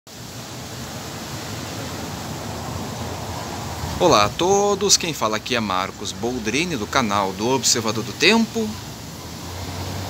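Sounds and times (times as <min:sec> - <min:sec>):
wind rushing: 0:01.0 - 0:05.6.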